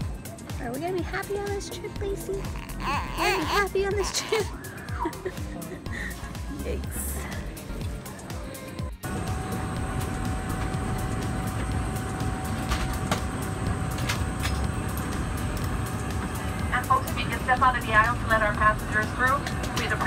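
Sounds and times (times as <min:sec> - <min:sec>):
constant steady tone: 0:09.0 - 0:20.0.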